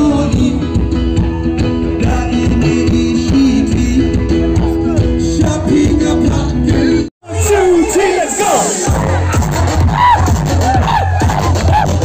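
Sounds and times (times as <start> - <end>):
person singing: 0.0 - 9.4
live band playing loud music: 0.0 - 12.0.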